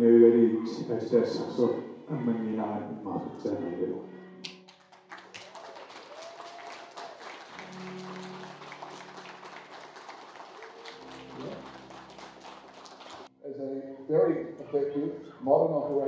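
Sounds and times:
soft held music tones: 0.0s - 4.4s
audience applauding: 4.4s - 13.3s.

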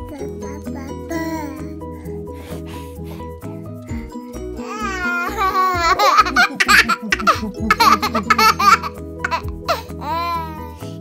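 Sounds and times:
background music: 0.0s - 11.0s
baby laughing: 4.6s - 10.8s.

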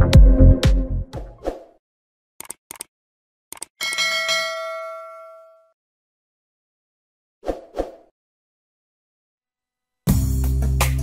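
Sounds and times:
notification bell ringing: 3.8s - 5.7s.

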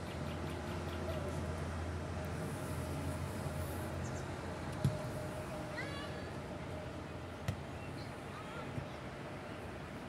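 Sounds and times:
background murmur: 0.6s - 10.0s.

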